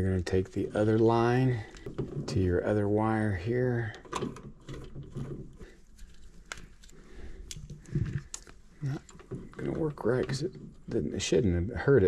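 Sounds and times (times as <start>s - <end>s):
wire nut clicking and scraping: 3.7s - 11.0s.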